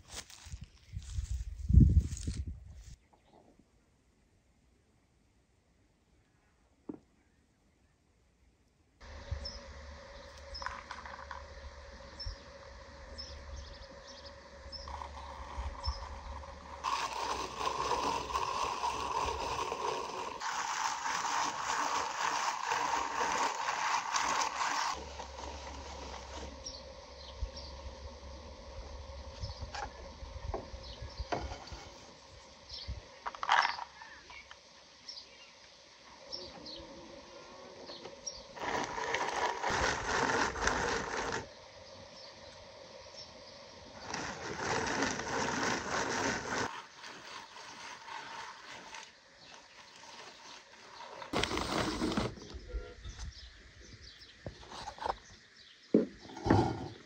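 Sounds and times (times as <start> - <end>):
rotary grater grinding walnuts: 10.3 - 27.1, 38.5 - 41.5, 44.0 - 52.4.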